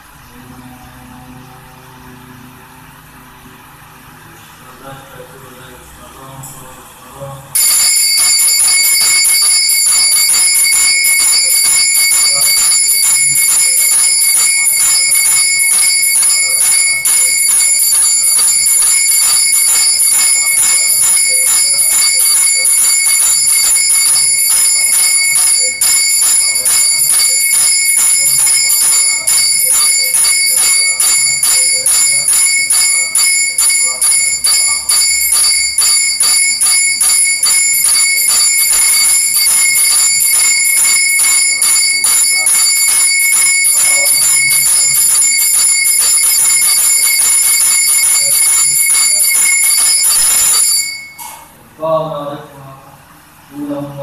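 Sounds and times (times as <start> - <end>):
temple bells ringing rapidly: 7.6 - 51.3.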